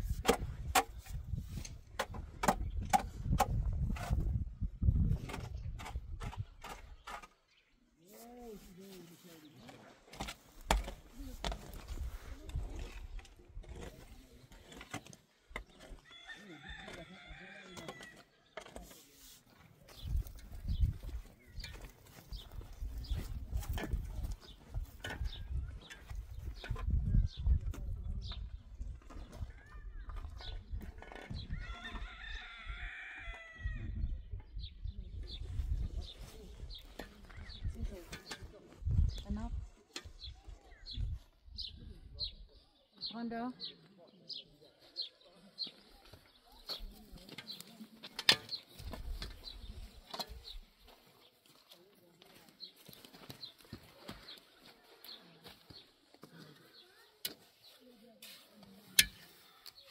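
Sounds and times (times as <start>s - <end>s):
tool digging stony earth: 0.0s - 16.1s, 16.8s - 28.0s, 46.2s - 51.4s, 56.3s - 59.9s
rooster crowing: 31.6s - 33.7s.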